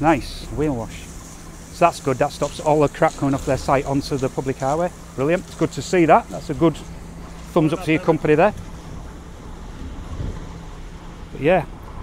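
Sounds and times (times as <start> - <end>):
lorry diesel engine running: 0.0 - 12.0
wind rumbling on microphone: 6.7 - 12.0.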